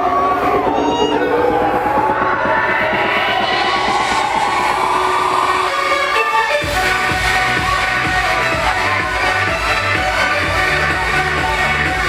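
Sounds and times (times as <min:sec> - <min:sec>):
crowd cheering: 0:00.0 - 0:12.0
electronic dance music: 0:00.0 - 0:12.0.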